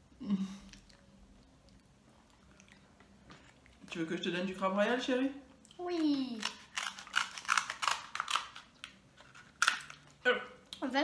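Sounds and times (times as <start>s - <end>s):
scissors crunching crab shell: 5.9s - 10.0s.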